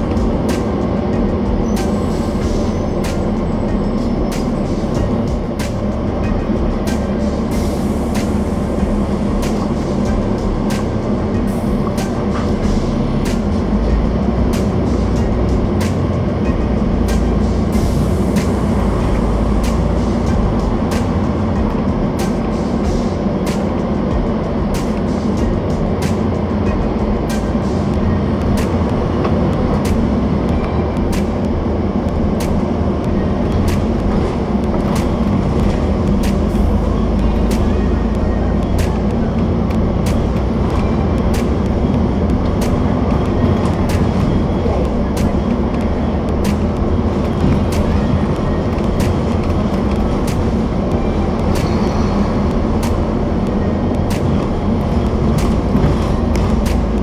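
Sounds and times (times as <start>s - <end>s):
bus engine rumble and road noise: 0.0s - 57.0s.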